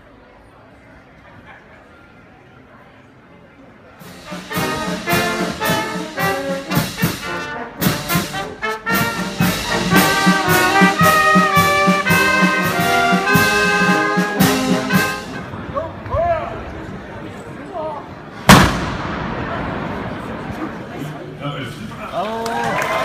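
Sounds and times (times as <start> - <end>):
brass band playing: 4.0 - 15.6.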